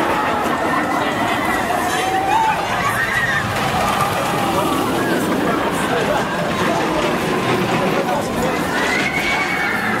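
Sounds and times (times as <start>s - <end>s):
outdoor crowd chatter: 0.0s - 10.0s.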